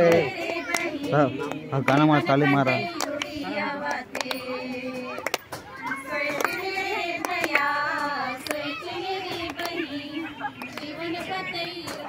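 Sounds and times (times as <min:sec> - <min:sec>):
high voices singing folk song: 0:00.0 - 0:12.0.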